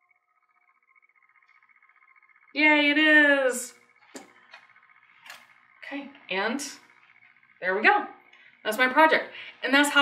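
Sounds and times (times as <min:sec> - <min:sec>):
steady high hum: 0:00.0 - 0:10.0.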